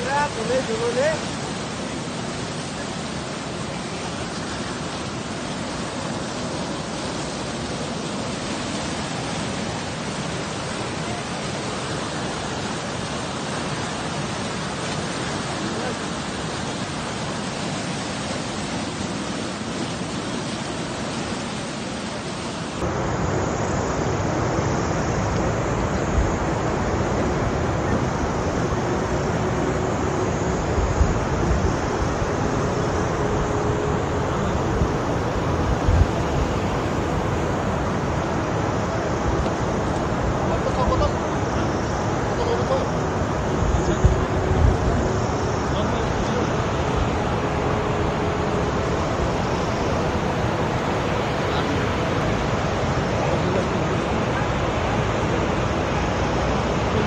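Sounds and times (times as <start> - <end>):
river rapids roaring: 0.0 - 57.0
steady rushing noise: 0.0 - 57.0
faint steady tone: 22.1 - 57.0.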